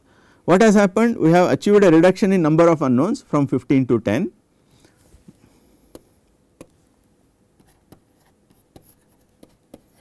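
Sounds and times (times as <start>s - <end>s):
pen tapping and scratching on tablet: 5.9s - 6.8s, 7.6s - 10.0s.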